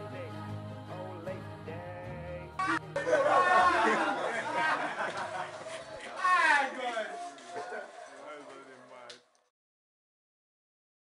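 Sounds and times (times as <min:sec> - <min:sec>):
group chatter: 0:02.6 - 0:09.3.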